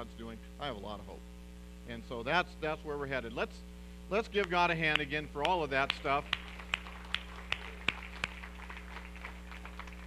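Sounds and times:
low electrical hum: 0:00.0 - 0:10.0
hand claps: 0:04.4 - 0:10.0.

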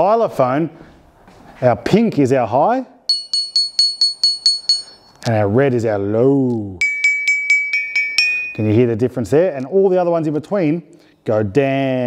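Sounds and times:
toy xylophone high note strikes: 0:06.8 - 0:08.6.

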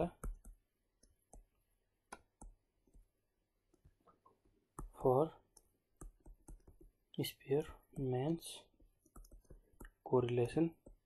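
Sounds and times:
stylus clicking on tablet screen: 0:00.0 - 0:11.0.

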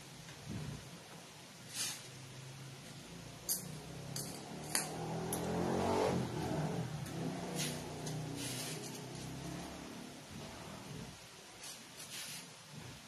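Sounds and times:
vehicle engine passing by: 0:03.7 - 0:11.1.

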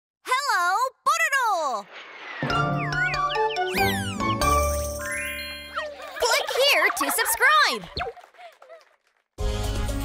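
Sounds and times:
children's music: 0:02.4 - 0:07.4
twinkling jingling tones: 0:03.7 - 0:07.4.

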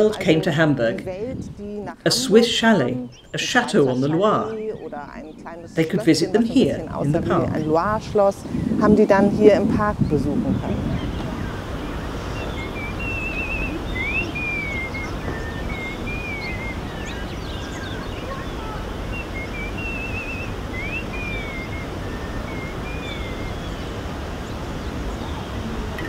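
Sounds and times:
low background noise: 0:00.0 - 0:26.0
songbird singing: 0:00.0 - 0:26.0.

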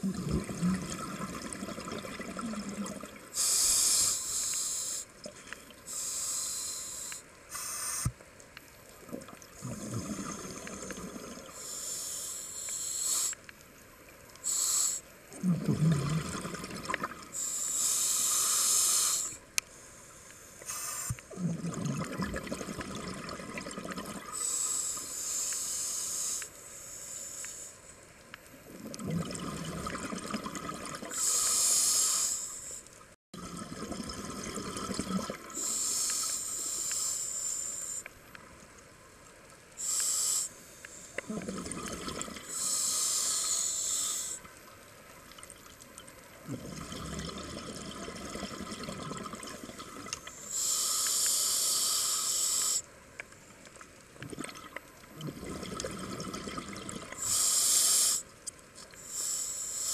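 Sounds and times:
hiss of exhaled bubbles: 0:00.0 - 0:08.2, 0:09.1 - 0:13.4, 0:14.4 - 0:19.4, 0:20.6 - 0:27.7, 0:28.7 - 0:32.8, 0:33.4 - 0:38.0, 0:39.8 - 0:44.5, 0:46.4 - 0:52.8, 0:54.2 - 0:58.3
diver inhaling through regulator: 0:03.3 - 0:05.1, 0:05.9 - 0:08.1, 0:09.6 - 0:13.4, 0:14.4 - 0:16.6, 0:17.3 - 0:21.6, 0:24.4 - 0:27.8, 0:31.1 - 0:32.9, 0:35.5 - 0:38.1, 0:39.8 - 0:44.4, 0:50.4 - 0:52.9, 0:57.1 - 0:58.3, 0:59.0 - 0:59.9.

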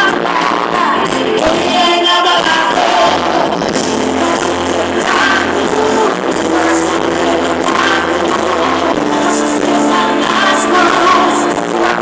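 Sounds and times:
bass guitar: 0:00.0 - 0:12.0
drums: 0:00.0 - 0:12.0
electric guitar: 0:00.0 - 0:12.0
person singing: 0:00.0 - 0:12.0.

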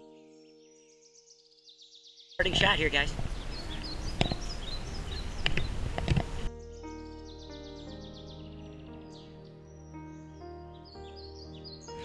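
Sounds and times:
background music with held notes: 0:00.0 - 0:12.0
small birds chirping: 0:00.0 - 0:12.0.

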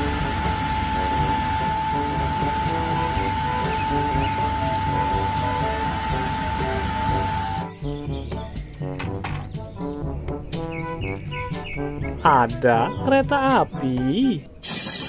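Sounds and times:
electronic background music: 0:00.0 - 0:15.0.

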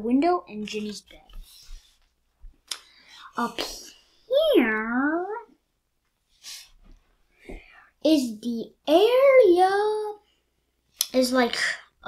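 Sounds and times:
child breathing softly: 0:02.8 - 0:04.2, 0:06.4 - 0:08.0.

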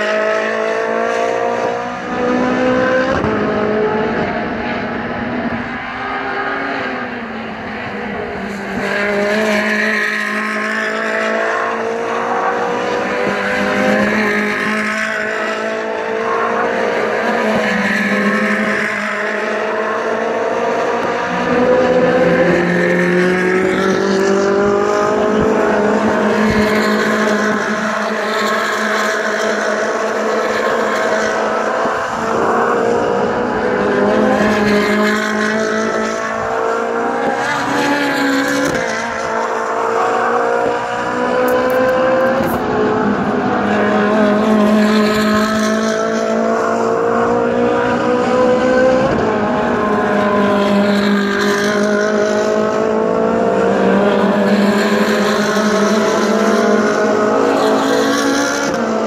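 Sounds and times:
racing engines: 0:00.0 - 0:59.0.

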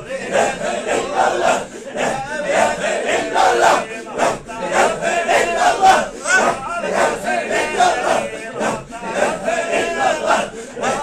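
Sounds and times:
men chanting rhythmically: 0:00.0 - 0:11.0.

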